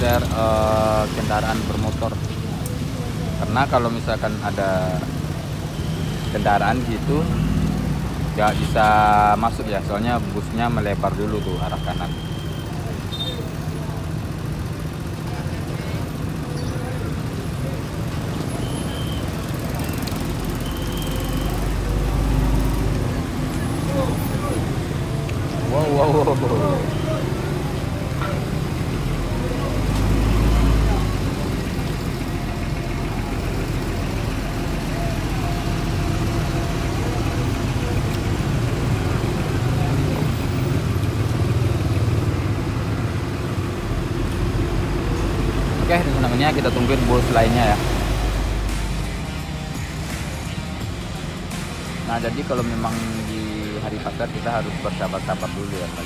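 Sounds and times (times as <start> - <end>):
bus diesel engine rumbling: 0.0 - 56.0
motorbikes: 0.0 - 56.0
street traffic: 0.0 - 56.0.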